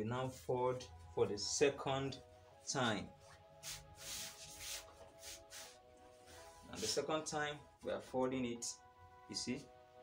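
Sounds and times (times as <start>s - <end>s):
faint background music: 0.0s - 10.0s
fabric rustling: 3.2s - 7.1s.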